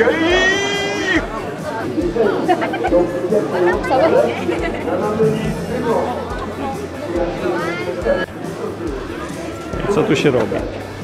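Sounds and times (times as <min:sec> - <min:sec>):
background music: 0:00.0 - 0:11.0
people chattering: 0:00.0 - 0:11.0.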